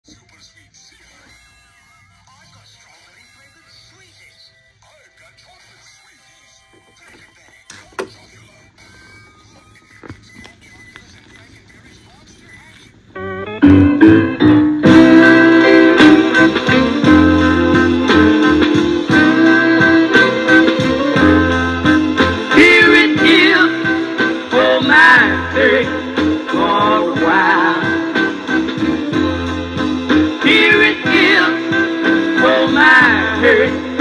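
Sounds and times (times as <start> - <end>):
soul record playing: 0.0 - 34.0
guitar intro: 13.1 - 34.0.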